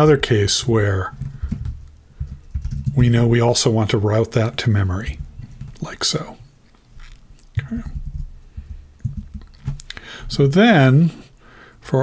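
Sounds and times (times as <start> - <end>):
computer keyboard typing: 1.1 - 3.5, 5.0 - 6.0, 7.0 - 9.9.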